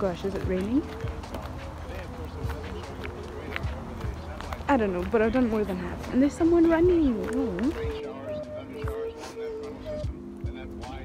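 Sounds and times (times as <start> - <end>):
footsteps on woodland path: 0.0 - 8.1
faint voices: 0.0 - 11.0.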